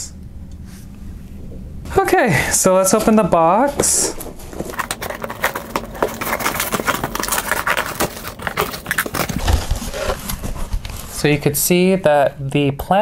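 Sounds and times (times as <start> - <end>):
cardboard flaps pulled open: 4.3 - 10.9.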